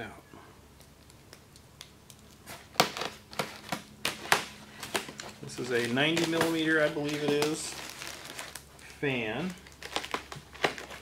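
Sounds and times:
plastic and foam crackling: 0.8s - 11.0s.

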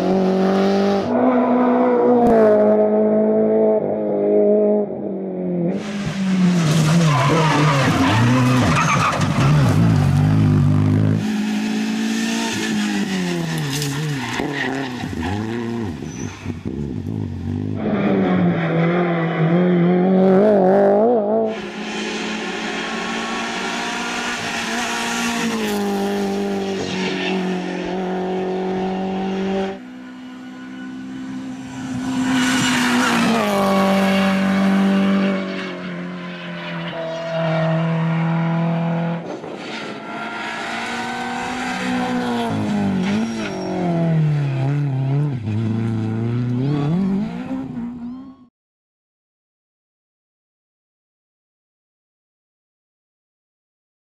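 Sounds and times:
rally car engine revving: 0.0s - 48.4s.

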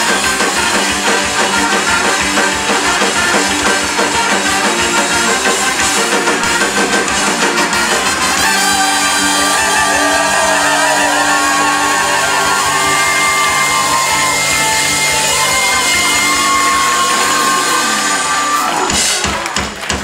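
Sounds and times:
horns holding long notes: 0.0s - 19.5s
drums: 0.0s - 20.0s.

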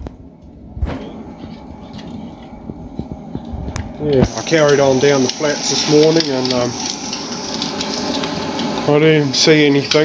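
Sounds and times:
egg sizzling in a pan: 1.4s - 10.0s.

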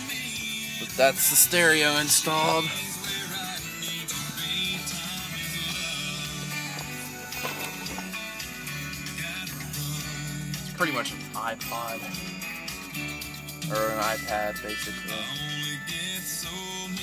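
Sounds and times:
radio music in a car: 0.0s - 17.0s.

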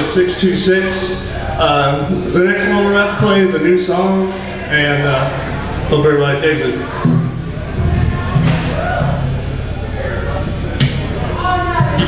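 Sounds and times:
amplified low notes: 0.0s - 12.0s
voices: 0.0s - 12.0s.

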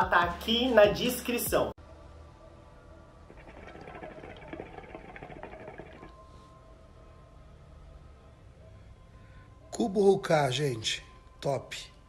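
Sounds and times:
hookah water bubbling: 3.2s - 6.2s.

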